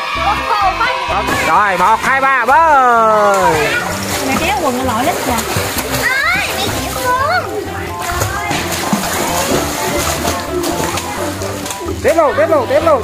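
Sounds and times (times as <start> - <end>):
pool water splashing: 0.0 - 13.0.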